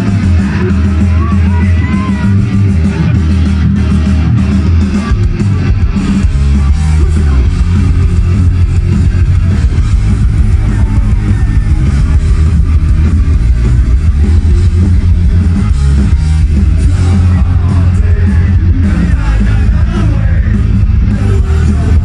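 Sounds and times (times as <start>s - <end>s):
punk rock band playing live: 0.0s - 22.0s.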